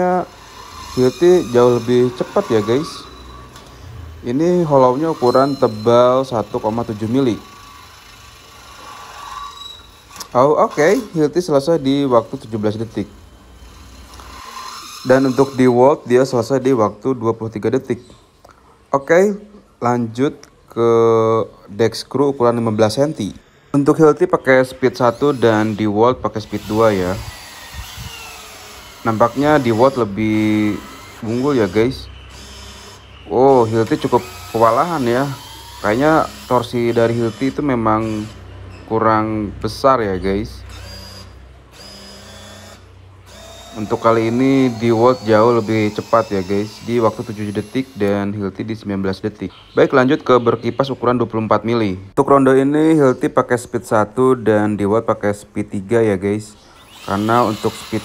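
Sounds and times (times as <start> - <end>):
drill boring through steel tube: 0.0 - 16.6, 23.4 - 48.9, 56.5 - 58.0.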